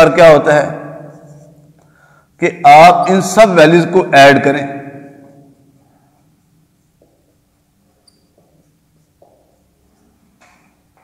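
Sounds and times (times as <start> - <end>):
marker squeaking on whiteboard: 8.0 - 10.2.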